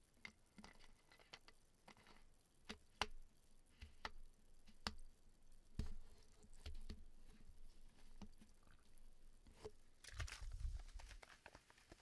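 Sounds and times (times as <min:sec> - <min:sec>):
fingertips tapping plastic bottle: 0:05.8 - 0:07.4.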